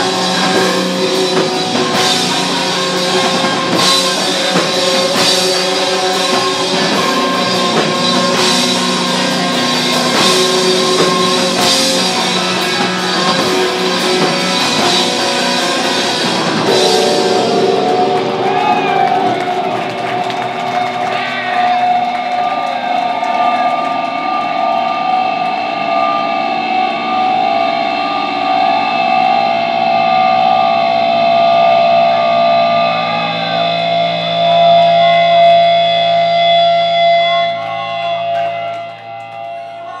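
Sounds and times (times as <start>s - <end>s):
electric guitar feedback drone: 0.0s - 40.0s.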